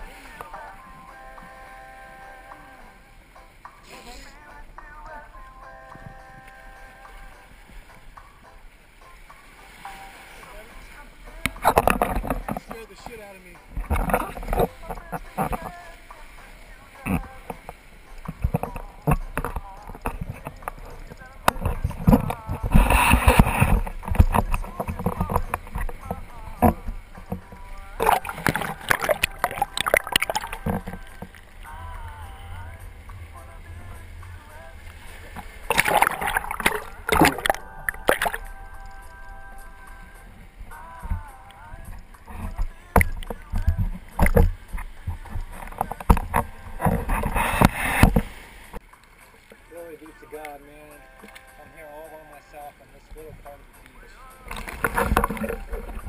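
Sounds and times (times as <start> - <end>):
seawater splashing: 0.0 - 56.0.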